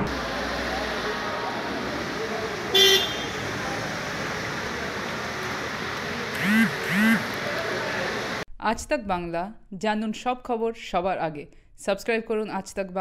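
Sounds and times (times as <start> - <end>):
street traffic: 0.0 - 8.4
car horn honk: 2.7 - 3.5.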